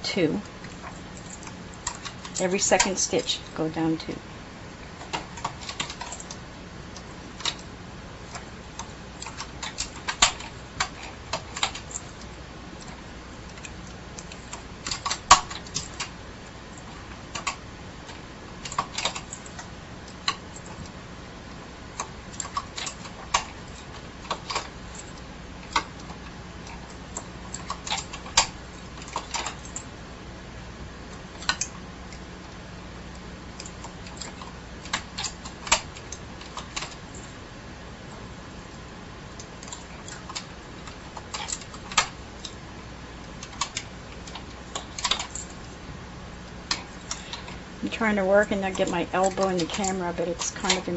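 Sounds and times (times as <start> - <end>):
steady faint hum: 0.0 - 50.9.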